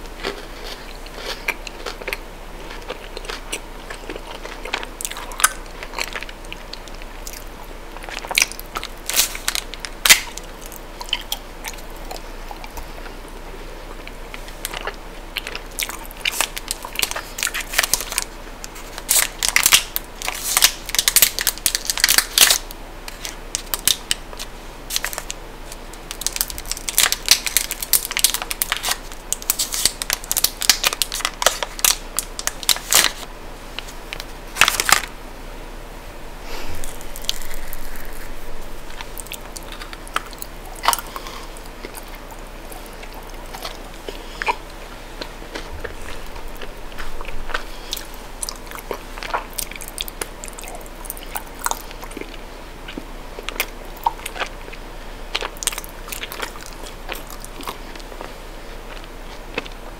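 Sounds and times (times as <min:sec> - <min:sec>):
chewing chocolate bar: 0:00.1 - 0:13.2, 0:13.9 - 0:33.2, 0:36.6 - 0:59.9
wrapper crinkling: 0:16.2 - 0:35.1, 0:36.6 - 0:41.1.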